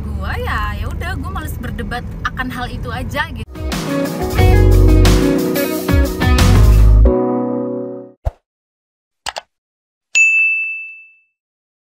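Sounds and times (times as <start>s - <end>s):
notification bell ding: 10.2s - 11.4s.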